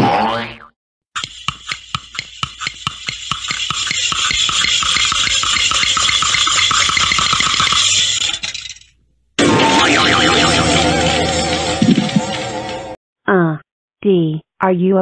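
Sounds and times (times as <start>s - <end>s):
cartoon clicks into harsh rattle: 1.2s - 8.9s.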